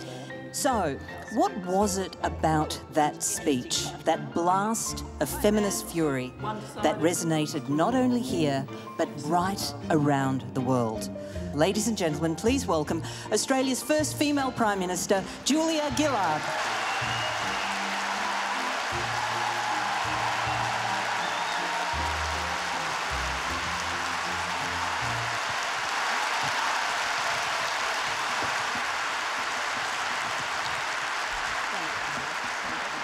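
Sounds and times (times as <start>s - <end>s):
audience applauding: 15.9s - 33.0s.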